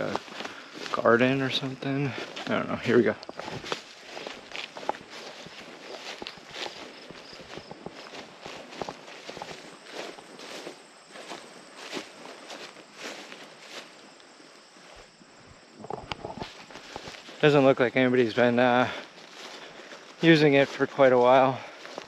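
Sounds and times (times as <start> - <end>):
footsteps through tall grass: 0.0 - 22.0
vegetation rustling: 0.0 - 22.0.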